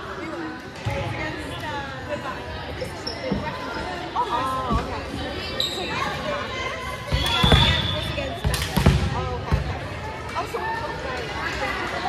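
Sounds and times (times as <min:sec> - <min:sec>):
players' voices chattering: 0:00.0 - 0:12.0.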